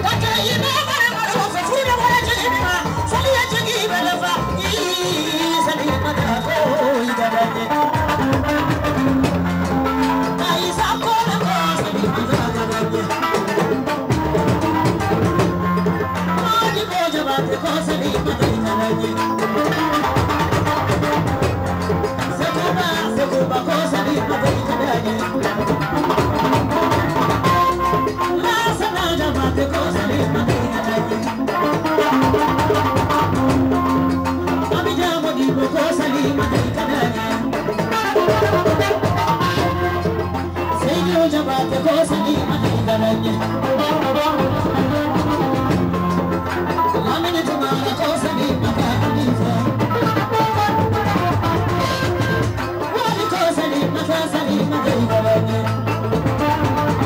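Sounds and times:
amplified band music: 0.0s - 57.0s
percussion: 0.0s - 57.0s
woman singing into a microphone: 0.0s - 57.0s.

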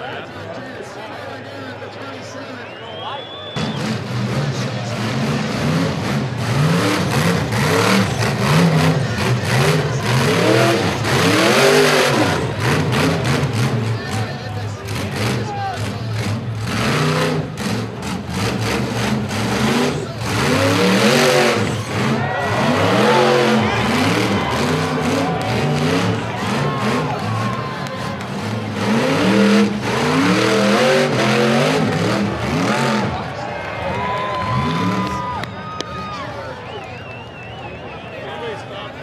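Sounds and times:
buggy engine revving: 3.5s - 35.4s
spectators shouting: 6.4s - 16.1s, 19.6s - 39.0s.

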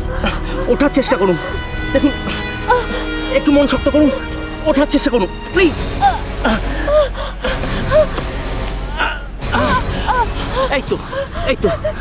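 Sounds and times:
woman gasping and moaning: 0.0s - 3.3s, 5.9s - 12.0s
background music score: 0.0s - 12.0s.

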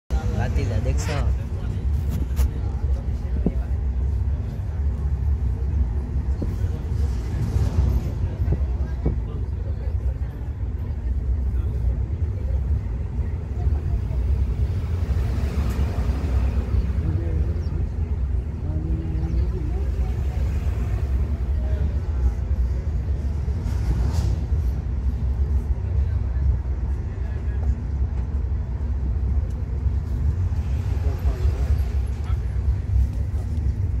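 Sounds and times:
vehicle rumble from inside cabin: 0.1s - 34.0s.

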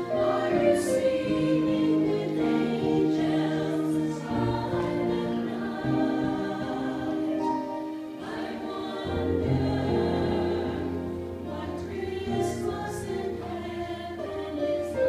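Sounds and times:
church choir singing: 0.0s - 15.0s.

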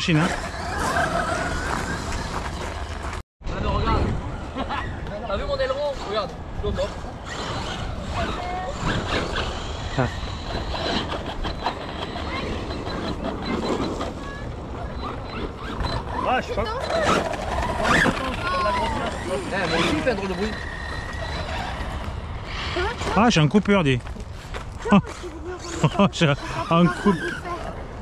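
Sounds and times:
radio-controlled car on gravel: 0.0s - 3.2s, 5.4s - 28.0s
wind rumbling on microphone: 0.0s - 28.0s
voices: 3.6s - 24.0s, 24.8s - 28.0s.

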